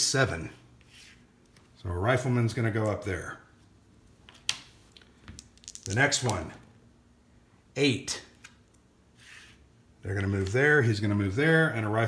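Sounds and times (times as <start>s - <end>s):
faint clicks of counters: 4.3s - 6.4s
game counters tapping on board: 5.3s - 6.4s
person speaking: 5.6s - 6.7s.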